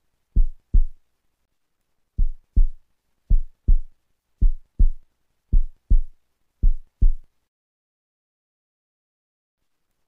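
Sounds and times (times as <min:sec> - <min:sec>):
heartbeat thumps: 0:00.4 - 0:01.0, 0:02.2 - 0:07.3.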